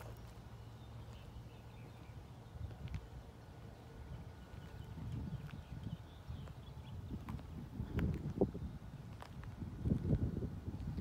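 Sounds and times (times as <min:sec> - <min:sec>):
footsteps on pavement: 0:00.0 - 0:11.0.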